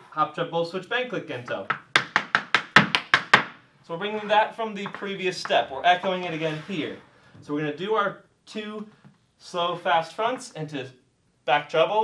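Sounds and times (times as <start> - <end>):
hard shoes tapping on wooden floor: 1.4 - 3.6, 4.8 - 5.7.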